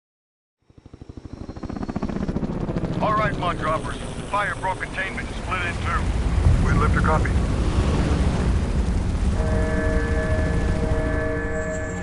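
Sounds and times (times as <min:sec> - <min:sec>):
helicopter rotor chop: 0:00.6 - 0:12.0.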